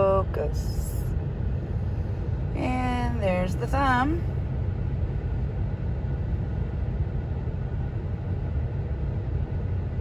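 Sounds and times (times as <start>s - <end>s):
engine rumble inside cabin: 0.0s - 10.0s.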